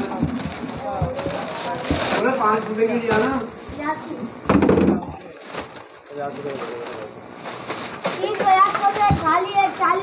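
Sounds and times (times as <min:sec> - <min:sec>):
paper and plastic bag rustling: 0:00.0 - 0:04.3, 0:05.1 - 0:10.0.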